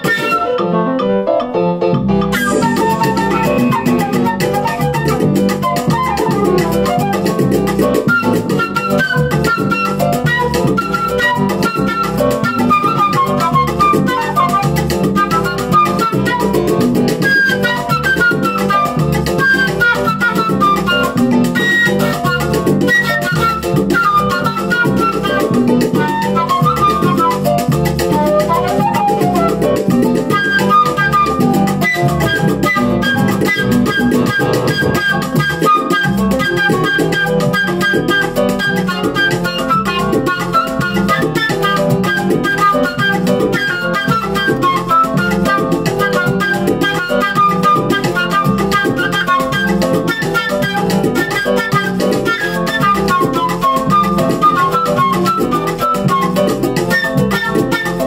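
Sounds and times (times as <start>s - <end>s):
flute melody: 0.0s - 58.0s
salsa backing track: 0.0s - 58.0s.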